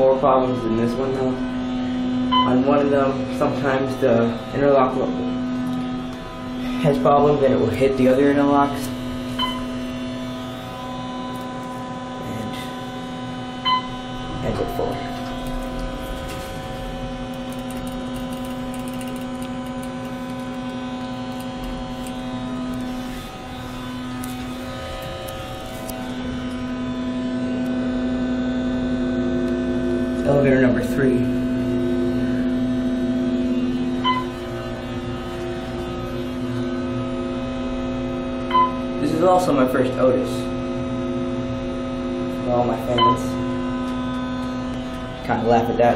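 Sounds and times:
electrical hum: 0.0 - 45.9
electronic chime tones: 2.2 - 2.8, 9.3 - 10.0, 13.6 - 15.4, 34.0 - 34.5, 38.5 - 38.9, 42.9 - 43.4
short beep: 2.3 - 2.6, 9.4 - 9.8, 13.6 - 14.0, 34.0 - 34.4, 38.5 - 38.8, 42.9 - 43.4.

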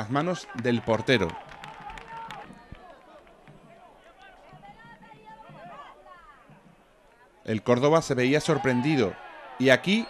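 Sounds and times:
distant shouts and calls: 8.4 - 10.0.

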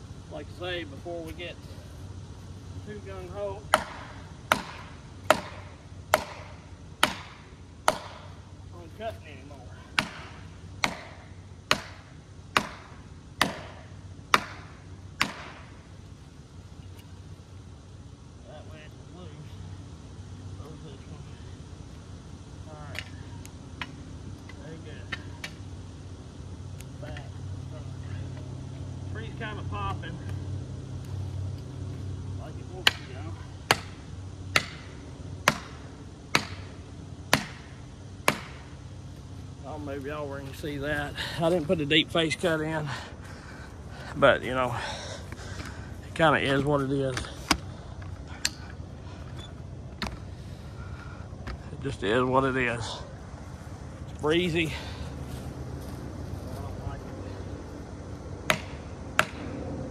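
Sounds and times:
hand tool chopping wood: 3.7 - 8.3, 10.0 - 15.7, 32.8 - 36.7, 37.3 - 38.6, 58.5 - 59.4.

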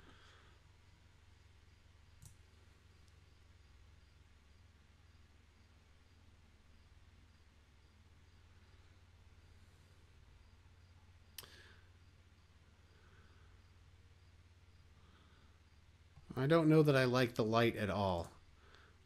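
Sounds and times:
low steady hum: 0.0 - 19.0
computer mouse click: 2.2 - 2.4
faint tick: 11.3 - 11.7.

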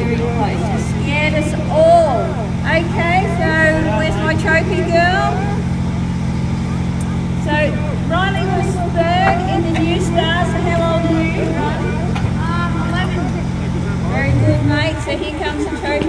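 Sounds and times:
woman speaking into a microphone: 0.0 - 5.6, 7.4 - 13.4, 14.1 - 16.0
race car engine idling: 0.0 - 16.0.

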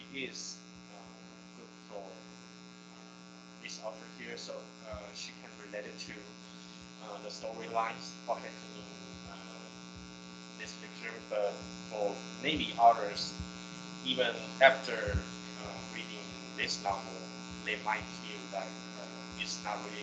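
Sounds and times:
person speaking over audio link: 0.0 - 1.3, 3.6 - 6.3, 7.0 - 9.7, 10.6 - 20.0
electrical buzz: 0.0 - 20.0.

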